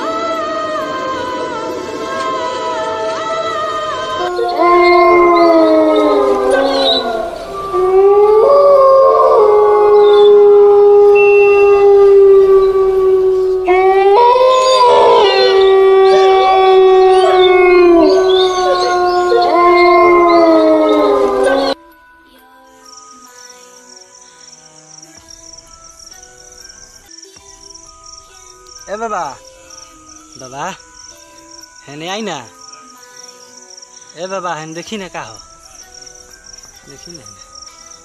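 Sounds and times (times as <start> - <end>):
dogs howling: 0.0 - 21.8.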